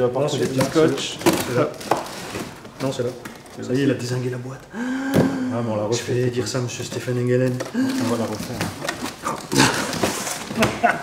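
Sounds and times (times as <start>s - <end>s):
cardboard scraping and rustling: 0.3s - 4.2s, 6.4s - 11.0s
low voices: 4.4s - 10.1s.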